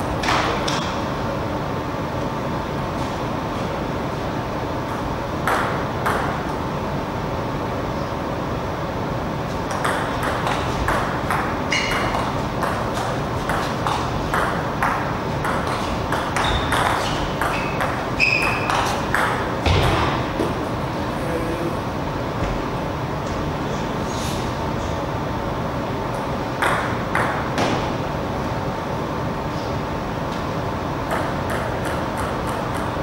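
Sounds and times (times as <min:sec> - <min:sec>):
hall background hum: 0:00.0 - 0:33.0
table tennis ball bouncing: 0:05.4 - 0:06.6, 0:09.7 - 0:20.5, 0:26.6 - 0:27.8, 0:31.0 - 0:33.0.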